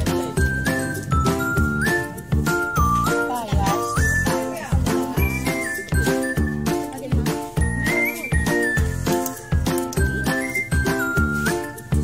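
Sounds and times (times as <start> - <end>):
background music with steady beat: 0.0 - 12.0
high bright melody: 0.0 - 12.0.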